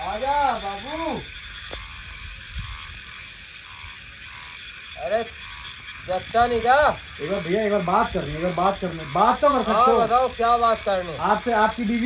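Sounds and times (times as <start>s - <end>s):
chorus of frogs calling: 0.0s - 12.0s.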